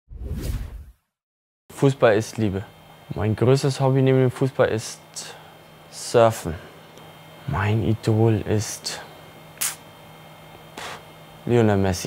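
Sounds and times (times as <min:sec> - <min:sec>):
whoosh sound effect: 0:00.1 - 0:00.9
man speaking: 0:01.7 - 0:06.7, 0:07.5 - 0:09.1, 0:10.8 - 0:12.0.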